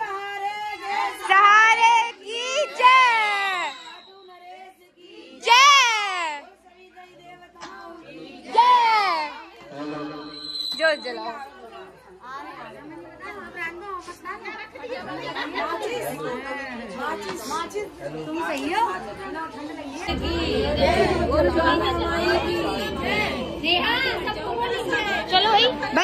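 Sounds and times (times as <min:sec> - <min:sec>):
many people talking: 0:00.0 - 0:26.0
low rumble: 0:20.1 - 0:23.6.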